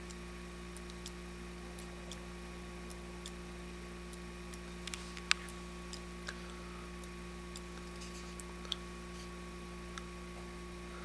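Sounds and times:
motor sharp ticks: 0.0 - 1.2, 1.8 - 3.4, 4.1 - 6.4
steady electrical hum: 0.0 - 11.0.

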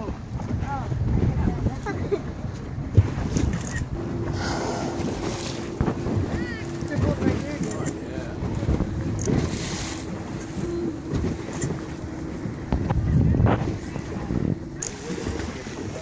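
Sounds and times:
boat engine humming: 0.0 - 16.0
water splashing against hull: 0.0 - 16.0
wind buffeting microphone: 0.0 - 16.0.

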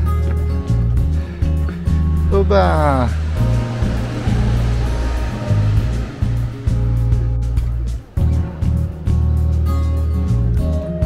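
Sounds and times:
background music with deep bass: 0.0 - 11.0
steady hiss: 0.8 - 9.0.

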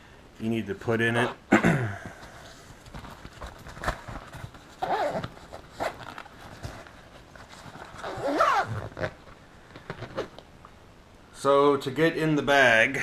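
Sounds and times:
zipper being drawn closed: 4.8 - 6.1, 8.0 - 9.2.

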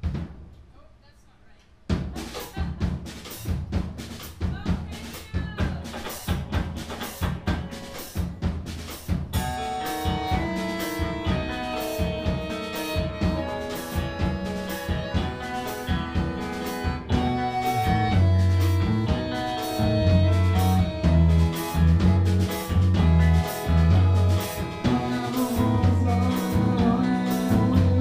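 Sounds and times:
drum hit: 0.0 - 0.6, 1.9 - 28.0
drum-kit beat: 0.0 - 0.8, 1.6 - 28.0
bass guitar: 2.5 - 28.0
electric guitar: 5.8 - 8.5, 9.3 - 28.0
accordion chords: 9.3 - 28.0.

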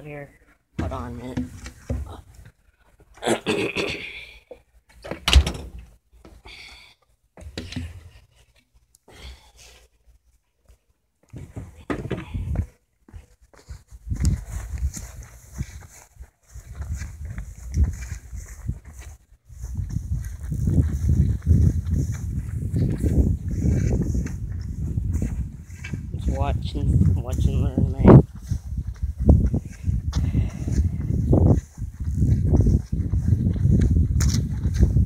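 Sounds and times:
wind buffeting microphone: 12.2 - 12.7, 13.9 - 35.0.

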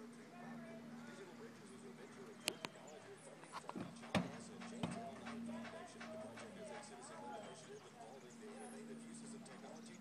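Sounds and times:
hooves knocking in horse trailer: 3.6 - 7.7.

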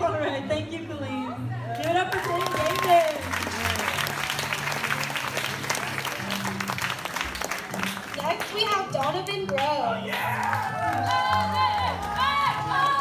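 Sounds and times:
audience applauding and cheering: 1.8 - 13.0
person cheering: 10.2 - 13.0.

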